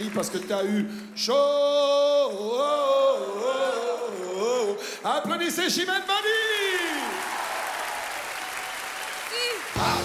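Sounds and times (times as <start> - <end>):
large audience applauding: 0.0 - 1.4, 5.6 - 10.0.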